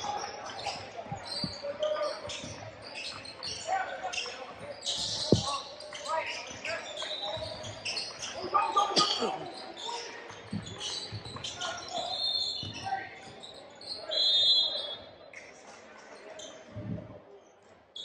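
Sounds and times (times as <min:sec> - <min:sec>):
voices of players and spectators: 0:00.0 - 0:18.0.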